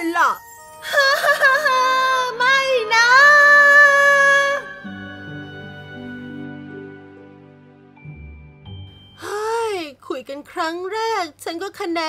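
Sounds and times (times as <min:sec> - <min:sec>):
woman wailing: 0:00.9 - 0:04.9.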